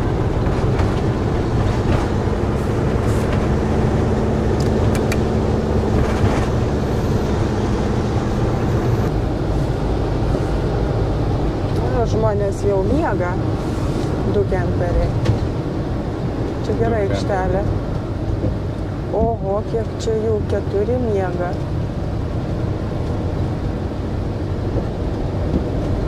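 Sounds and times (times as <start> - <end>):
engine drone: 0.0 - 26.0
tyre-on-road rumble: 0.0 - 26.0.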